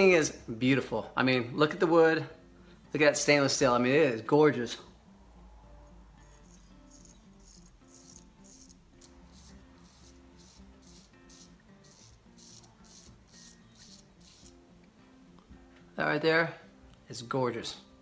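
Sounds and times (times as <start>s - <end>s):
faint background music: 0.0s - 18.0s.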